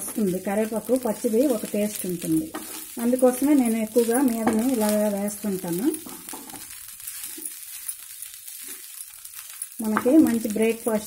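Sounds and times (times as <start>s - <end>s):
food sizzling in pan: 0.0s - 11.0s
spatula scraping pan: 2.4s - 5.0s.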